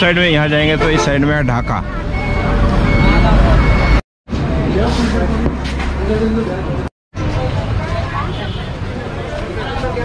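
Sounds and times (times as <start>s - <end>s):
engines and street traffic rumble: 0.0s - 10.0s
reversing beeper: 0.7s - 4.0s.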